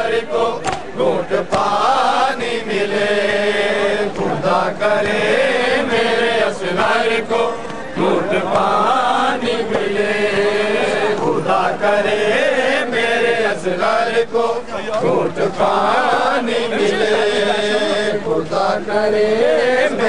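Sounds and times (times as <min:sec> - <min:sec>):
men chanting a lament: 0:00.0 - 0:20.0
sharp slaps: 0:00.6 - 0:00.9.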